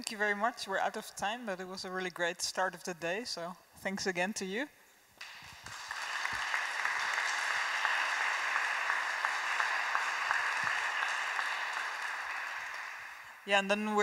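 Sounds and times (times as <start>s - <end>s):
audience applauding: 5.2s - 13.5s.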